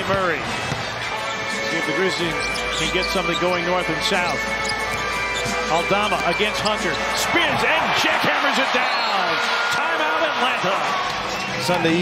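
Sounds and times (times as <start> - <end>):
basketball bouncing: 0.0 - 1.1
sneakers squeaking on court: 0.0 - 7.6, 11.0 - 12.0
crowd noise: 0.0 - 12.0.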